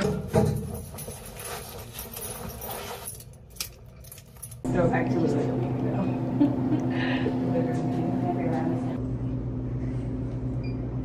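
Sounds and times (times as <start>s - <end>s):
keys jangling: 0.0s - 4.7s
bag rustling: 0.6s - 3.4s.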